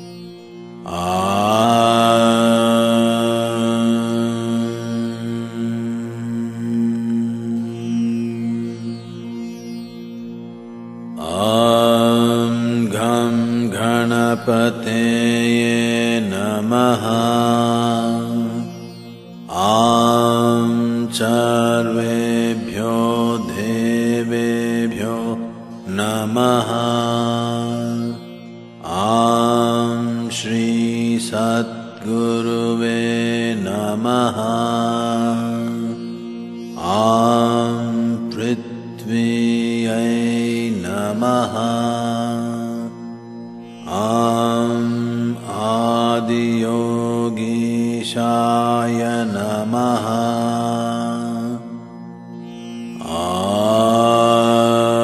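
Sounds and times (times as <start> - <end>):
man chanting: 0.9 - 9.0, 11.2 - 43.0, 43.8 - 51.8, 53.0 - 55.0.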